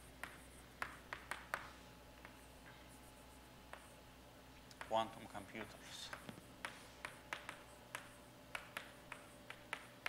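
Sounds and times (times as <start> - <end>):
chalk tapping on blackboard: 0.0 - 2.8, 3.7 - 4.0, 4.7 - 10.0.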